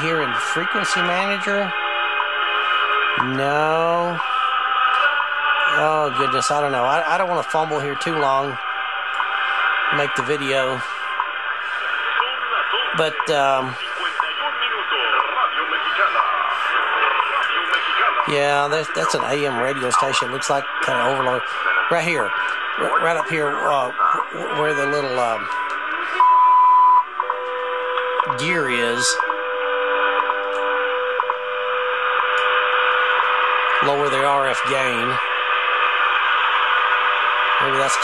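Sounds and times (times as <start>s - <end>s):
radio hiss and static: 0.0s - 5.1s, 5.7s - 38.0s
steady audio tone: 0.0s - 38.0s
thin radio voice: 11.9s - 26.2s.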